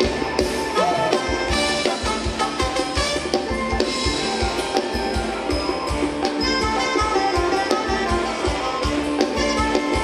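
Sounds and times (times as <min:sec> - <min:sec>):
live band dance music: 0:00.0 - 0:10.0.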